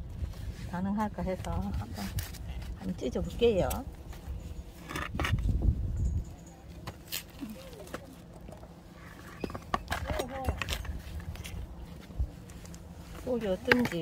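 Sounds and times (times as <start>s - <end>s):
plastic flower pot clicks and scrapes: 13.4s - 14.0s.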